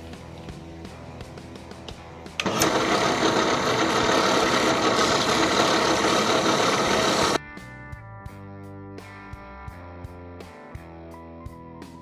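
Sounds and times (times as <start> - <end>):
drill press sanding: 2.4 - 7.4.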